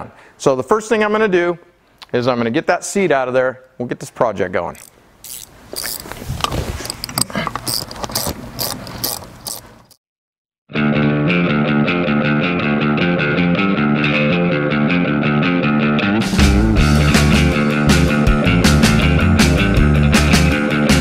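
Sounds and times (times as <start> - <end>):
hand tools clicking and clattering: 4.8 - 6.2, 6.8 - 10.0
rock music with guitar: 10.7 - 21.0.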